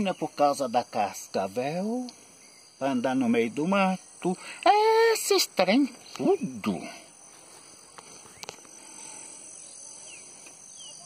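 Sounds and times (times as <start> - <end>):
faint bird chirps: 0.0 - 11.0
steady hiss: 0.0 - 11.0.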